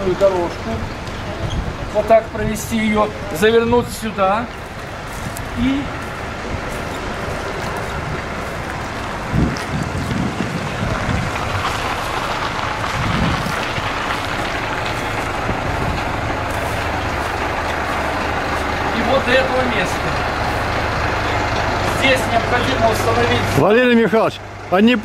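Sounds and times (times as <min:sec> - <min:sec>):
bus engine rumbling: 0:00.0 - 0:25.0
dull bumps: 0:06.4 - 0:22.7.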